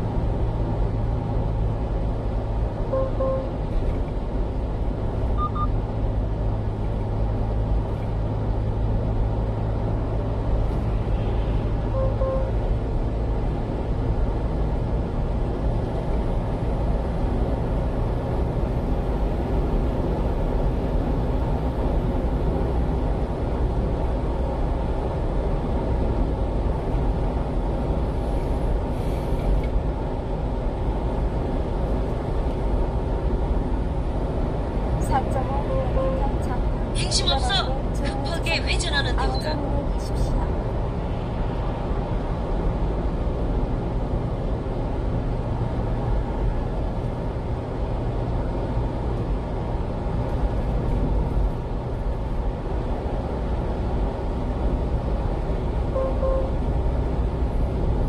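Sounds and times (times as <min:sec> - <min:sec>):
truck engine and tyre drone: 0:00.0 - 0:58.0.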